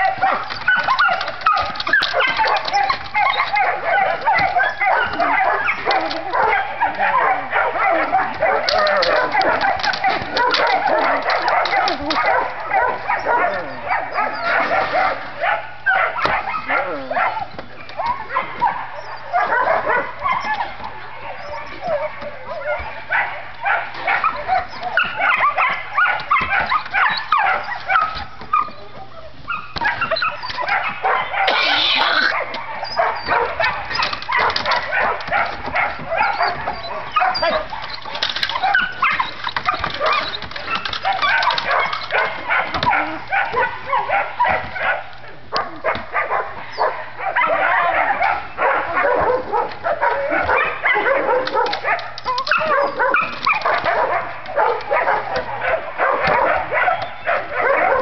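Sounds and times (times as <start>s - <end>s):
dogs barking and yipping: 0.0s - 58.0s.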